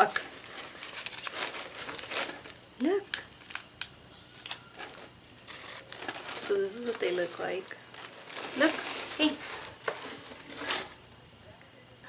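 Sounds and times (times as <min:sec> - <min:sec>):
plastic wrapper crinkling and tearing: 0:00.0 - 0:11.0.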